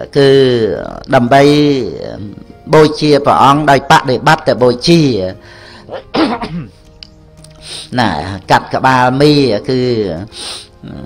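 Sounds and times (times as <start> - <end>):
soft background music: 0.0 - 11.0
man clearing his throat: 5.9 - 6.8.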